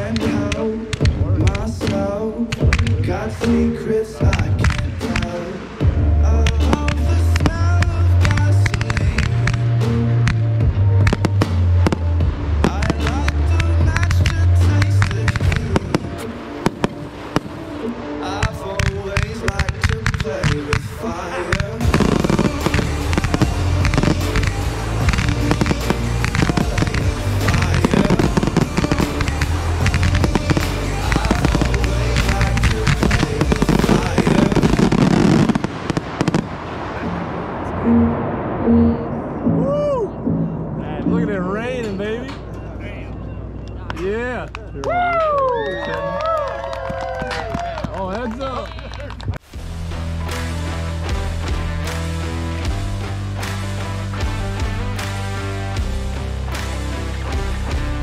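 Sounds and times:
fireworks firing and crackling: 0.0 - 40.1
music with heavy bass line: 0.0 - 43.9, 49.4 - 58.0.

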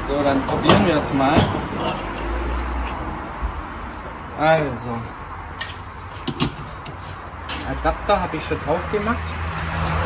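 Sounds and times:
metal clicks and knocks: 5.6 - 7.6.

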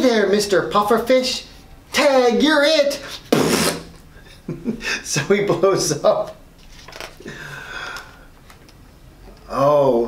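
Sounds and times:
man puffing air from mouth: 3.2 - 4.0.

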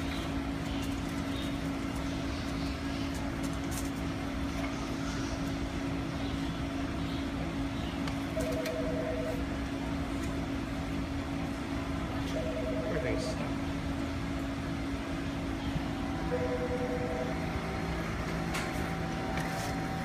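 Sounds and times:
shop machinery hum: 0.0 - 20.0.

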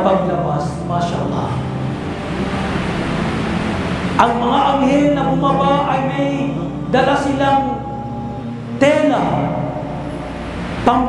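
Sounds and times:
steady rushing noise: 1.5 - 6.1, 8.5 - 11.0.

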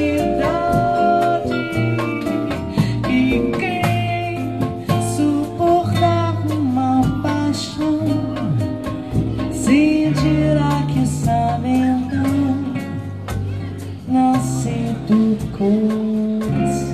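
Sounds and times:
jazz band playing bossa nova: 0.0 - 16.9
woman singing: 0.0 - 16.9.

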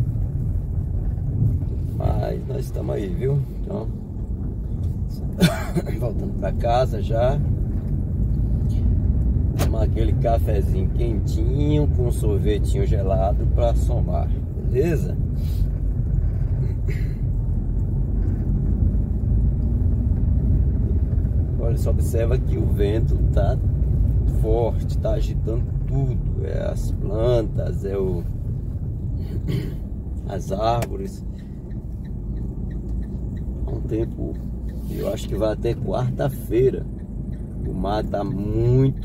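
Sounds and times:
car engine rumble: 0.0 - 39.0.

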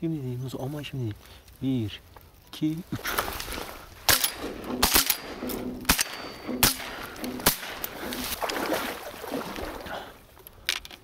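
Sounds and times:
shotgun blasts: 4.1 - 8.4.

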